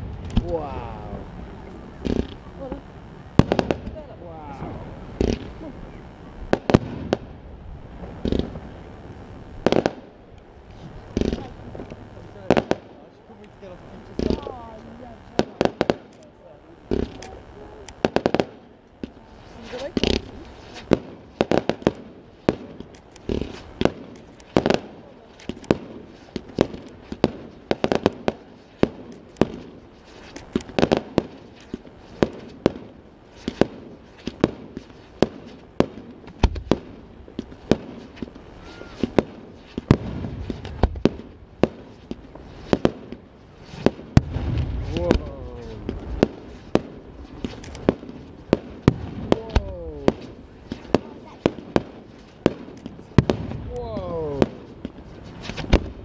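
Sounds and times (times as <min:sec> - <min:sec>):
fireworks bangs: 0:00.0 - 0:56.0.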